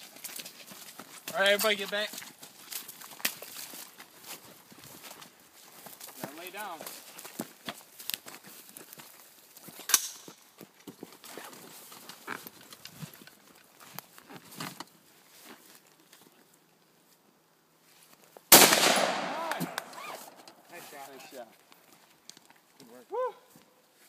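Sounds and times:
rifle shot: 0:18.5 - 0:20.4.

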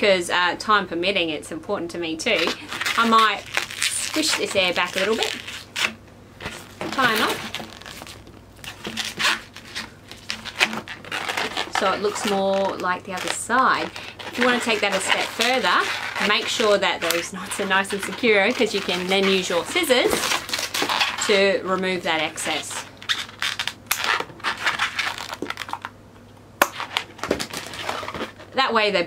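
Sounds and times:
balloon squeaking against fingers: 0:13.6 - 0:21.3, 0:23.0 - 0:25.8.

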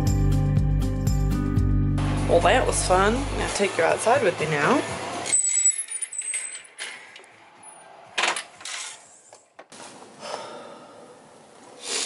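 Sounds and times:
knocks and clatters: 0:08.1 - 0:09.8.

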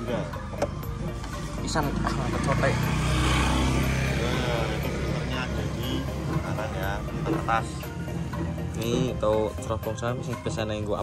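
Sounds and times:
music: 0:00.0 - 0:11.0
vehicle engine passing: 0:00.7 - 0:09.6.

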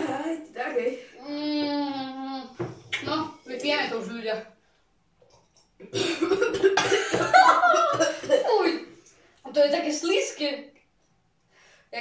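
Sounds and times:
boys coughing: 0:05.8 - 0:08.8
boys laughing: 0:06.0 - 0:08.8.

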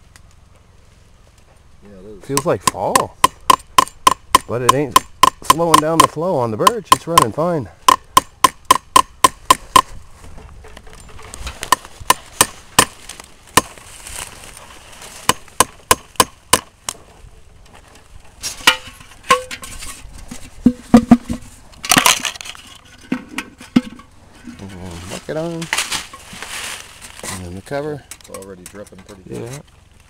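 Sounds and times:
hammer tapping metal: 0:02.4 - 0:09.9
metal bucket clanks and scrape: 0:17.7 - 0:26.4.

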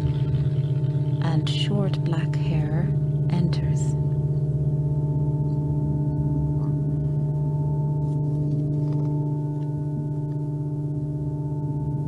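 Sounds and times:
electronic drone: 0:00.0 - 0:12.0.

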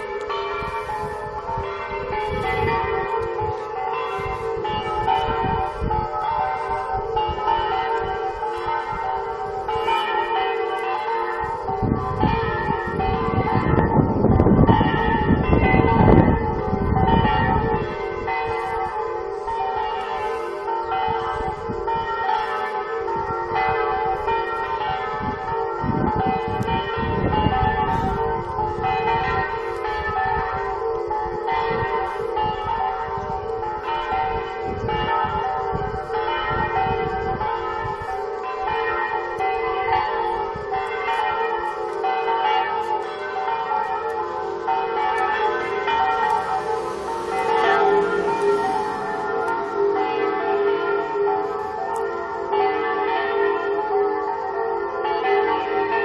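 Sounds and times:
church bell peal over loudspeakers: 0:00.0 - 0:56.0.

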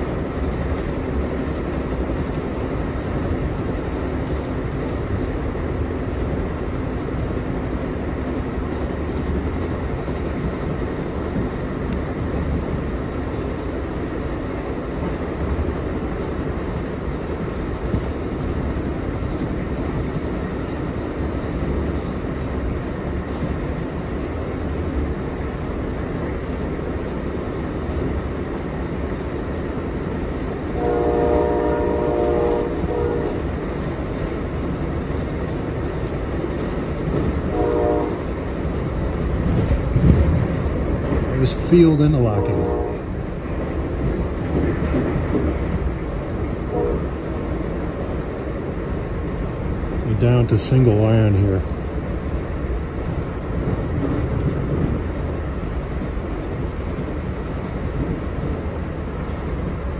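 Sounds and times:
train wheels rumbling on rail: 0:00.0 - 0:59.9
locomotive air horn: 0:30.8 - 0:33.4, 0:37.5 - 0:38.3, 0:42.3 - 0:43.1, 0:46.7 - 0:47.2.

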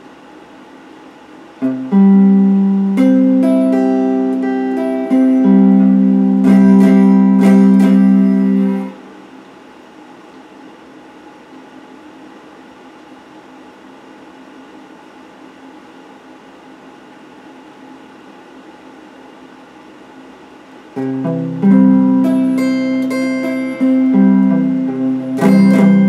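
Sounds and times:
background hiss: 0:00.0 - 0:26.0
faint hum: 0:00.0 - 0:26.0.

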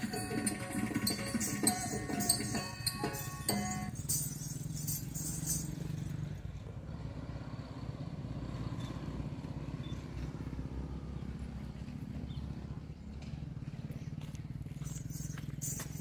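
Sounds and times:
small engine running: 0:00.0 - 0:16.0.

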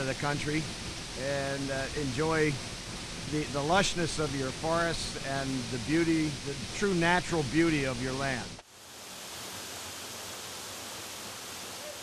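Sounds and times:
waterfall rushing into pool: 0:00.0 - 0:12.0.

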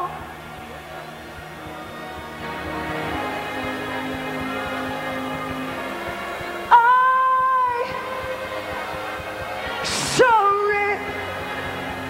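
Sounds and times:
steady held chords: 0:00.0 - 0:12.0.

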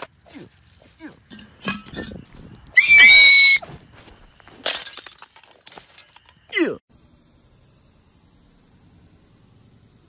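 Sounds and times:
loud high-pitched shriek: 0:02.8 - 0:03.6.

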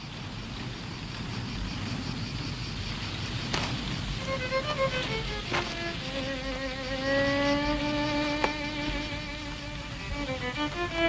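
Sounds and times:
slow violin melody: 0:04.0 - 0:11.0
violin long wavering note: 0:04.2 - 0:11.0.

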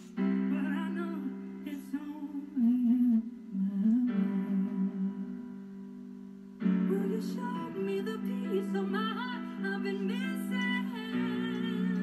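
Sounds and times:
faint song accompaniment: 0:00.0 - 0:12.0
person humming a melody: 0:01.9 - 0:05.6.

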